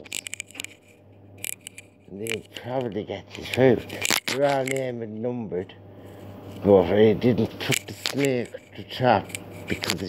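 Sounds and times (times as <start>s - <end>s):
light scraping: 0.0s - 5.0s, 6.0s - 10.0s
faint low hum: 0.0s - 10.0s.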